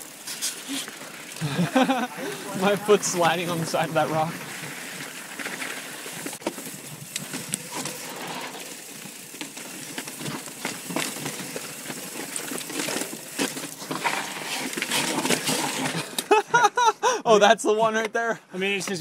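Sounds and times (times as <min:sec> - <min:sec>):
bike tyre and wind noise: 0:00.0 - 0:16.3
bike clicks and rattles on rock: 0:00.0 - 0:16.4
man laughing: 0:01.4 - 0:03.0, 0:16.2 - 0:17.4.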